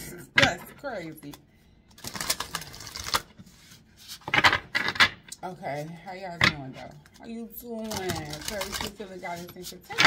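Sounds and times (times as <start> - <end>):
cards being shuffled: 2.0 - 5.0, 7.8 - 10.0.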